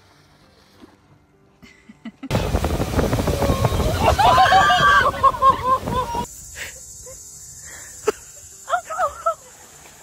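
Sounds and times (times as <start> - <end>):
boat rumble and wake: 2.3 - 6.3
person crying out: 3.9 - 6.3
high insect buzz: 5.5 - 10.0.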